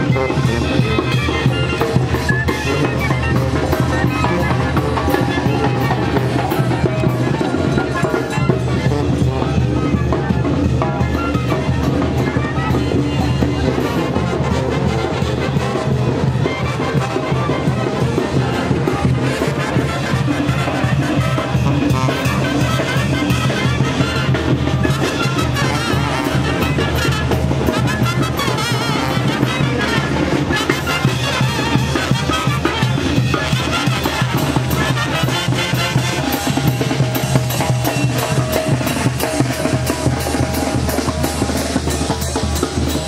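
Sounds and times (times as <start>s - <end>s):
brass band playing dance tune: 0.0s - 43.0s.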